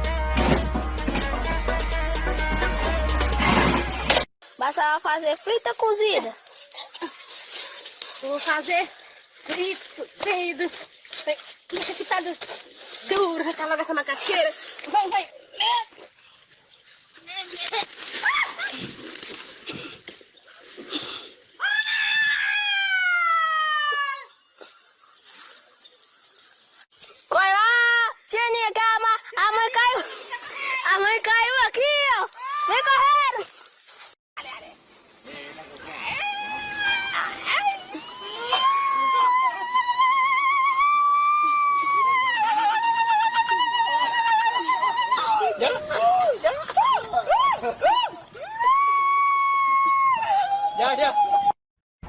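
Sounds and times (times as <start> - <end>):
people exclaiming and screaming: 17.5 - 18.9, 21.6 - 24.3, 35.9 - 51.6
long falling scream: 21.6 - 24.3, 36.2 - 45.4, 48.4 - 51.6.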